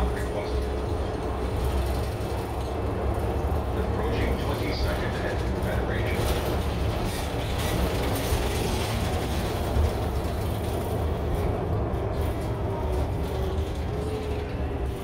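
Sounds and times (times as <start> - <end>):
bus engine and road noise: 0.0 - 15.0.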